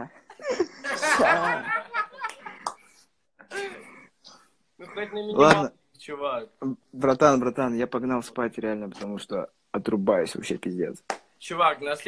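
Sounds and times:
men laughing: 0.3s - 2.6s
men talking: 1.0s - 2.0s, 4.8s - 12.0s.

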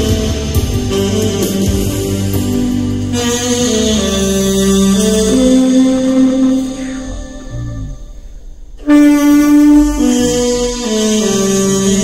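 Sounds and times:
tenor saxophone long note: 0.0s - 12.0s.

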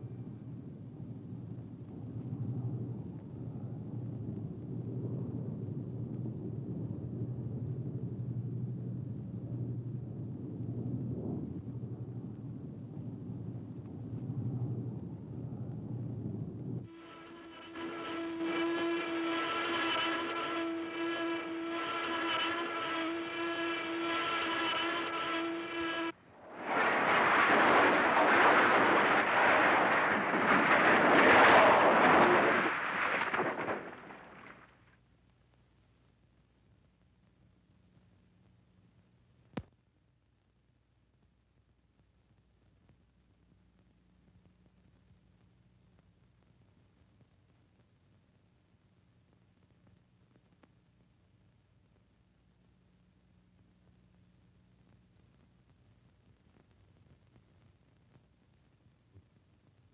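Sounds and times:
low engine rumble: 0.0s - 34.7s
film soundtrack hum and hiss: 0.0s - 59.9s
high-pitched engine drone: 16.9s - 26.1s
loud rushing roar: 16.9s - 34.6s.

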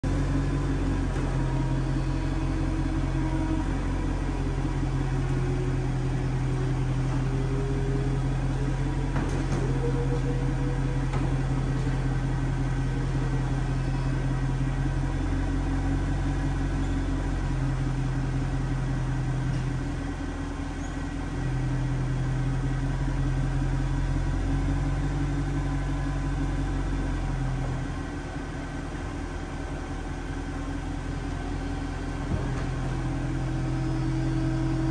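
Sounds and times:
constant low drone: 0.0s - 34.9s
convertible roof motor hum: 0.0s - 34.9s.

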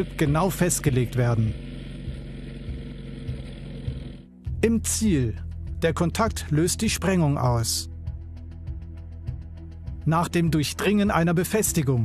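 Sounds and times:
tank diesel engine rumble: 0.0s - 4.2s.

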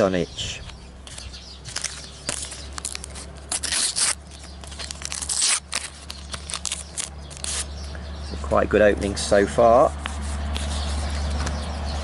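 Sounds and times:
wrappers crinkling and rustling: 1.2s - 7.8s
wrapper ripping: 1.8s - 7.8s.

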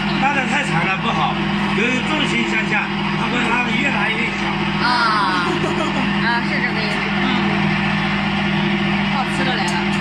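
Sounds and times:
machine motor hum and whir: 0.0s - 10.0s.

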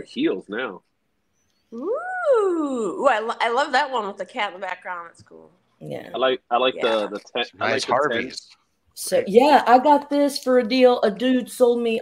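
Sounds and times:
person saying ooh: 1.8s - 3.0s.

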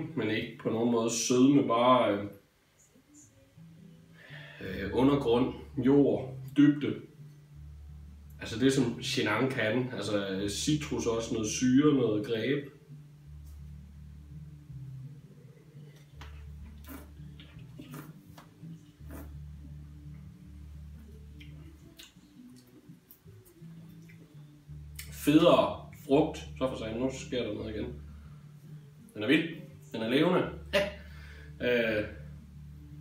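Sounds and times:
man speaking: 4.6s - 7.1s, 25.1s - 28.0s, 29.2s - 30.9s, 31.6s - 32.2s
mouth sipping and swallowing: 16.6s - 18.3s, 19.0s - 19.5s.

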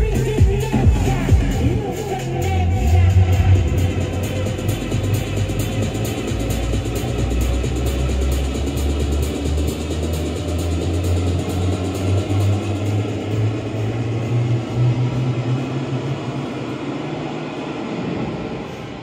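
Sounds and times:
deep bassline: 0.0s - 17.0s
electronic dance music: 0.0s - 18.2s.

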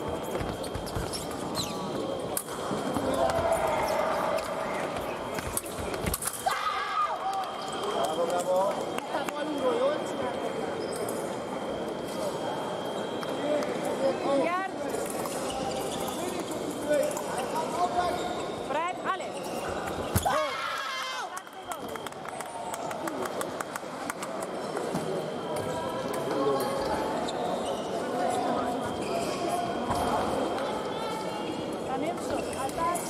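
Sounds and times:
shoes squeaking on floor: 0.0s - 2.2s.

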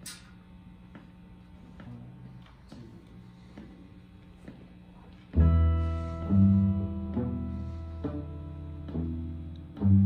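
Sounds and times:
double bass: 5.3s - 10.0s
electric guitars: 5.3s - 10.0s.

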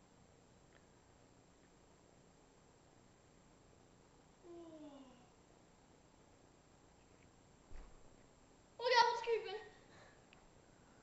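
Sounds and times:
soft low thump: 7.7s - 8.1s.

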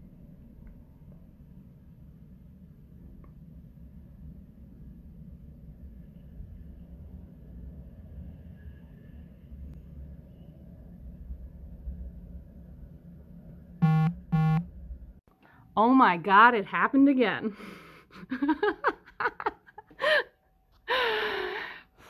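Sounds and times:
horn blasts: 13.8s - 14.6s.

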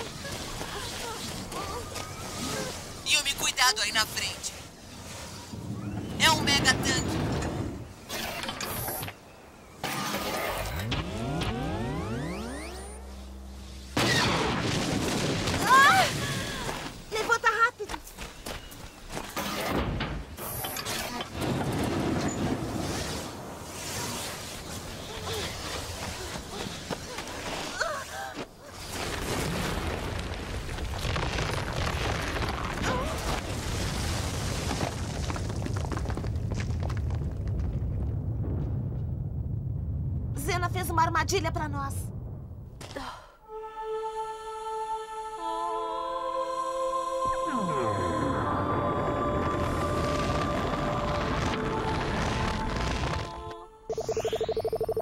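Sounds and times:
sandstorm wind noise: 4.7s - 8.1s, 21.4s - 27.6s, 29.1s - 42.8s, 48.5s - 53.4s
rising whine: 10.5s - 14.0s
low rumble: 35.8s - 42.8s, 47.5s - 54.1s.

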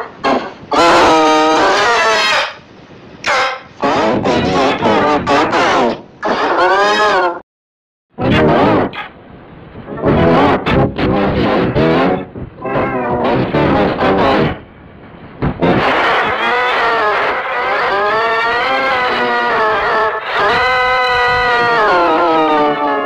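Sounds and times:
pitch-shifted child screaming: 16.4s - 23.0s.

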